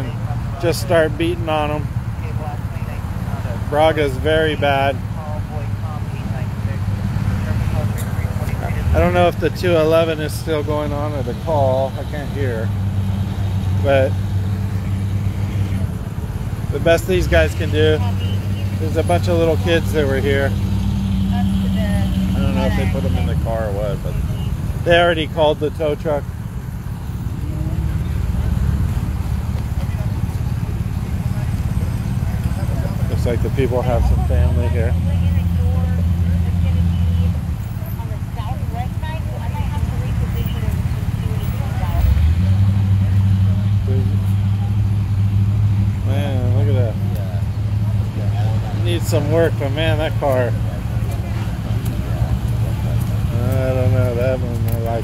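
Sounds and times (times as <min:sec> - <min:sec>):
faint voices talking: 0:00.0 - 0:55.0
low rumble of street noise: 0:00.0 - 0:55.0.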